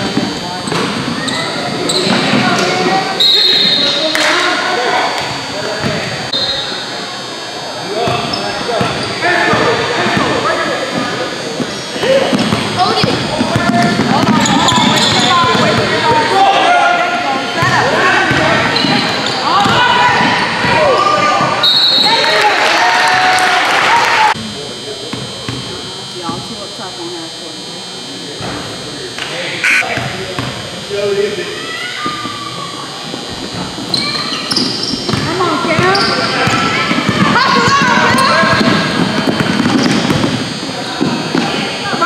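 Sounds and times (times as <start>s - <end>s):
sneakers squeaking: 0.0s - 16.4s, 17.4s - 22.3s, 29.6s - 30.7s, 31.7s - 42.0s.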